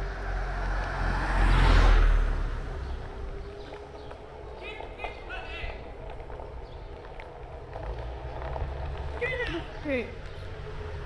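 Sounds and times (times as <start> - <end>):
car passing close by: 0.0 - 4.5.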